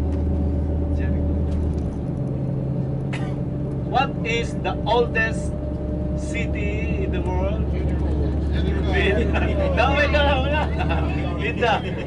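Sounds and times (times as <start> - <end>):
bus engine and road noise: 0.0 - 12.0.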